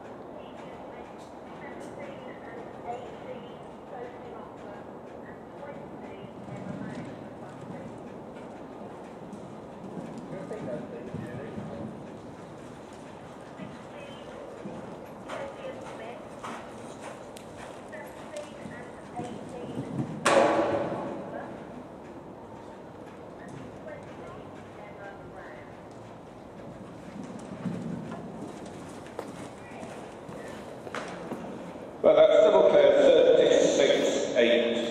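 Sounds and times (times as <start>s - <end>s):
people talking: 0.4s - 8.0s, 10.3s - 11.9s, 13.6s - 14.4s, 15.3s - 16.2s, 17.9s - 20.1s, 23.4s - 25.7s, 29.6s - 30.6s, 32.1s - 34.9s
horse hoofbeats on soft ground: 0.4s - 32.0s
sharp hoof knocks: 19.6s - 21.4s.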